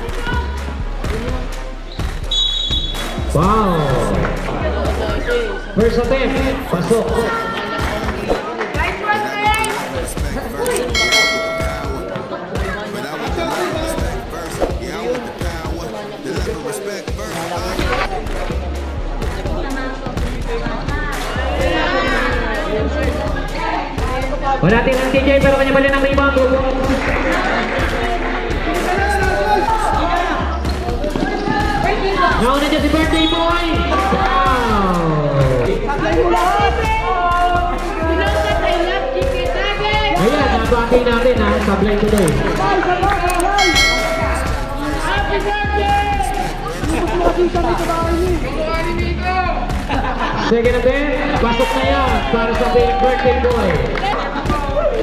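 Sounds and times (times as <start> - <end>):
background music: 0.0 - 55.0
referee's whistle blast: 2.3 - 3.2.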